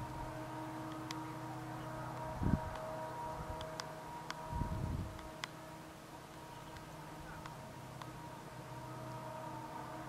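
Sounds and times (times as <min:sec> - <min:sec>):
distant train humming: 0:00.0 - 0:10.0
low train rumble: 0:00.0 - 0:10.0
faint clicks: 0:06.3 - 0:08.2.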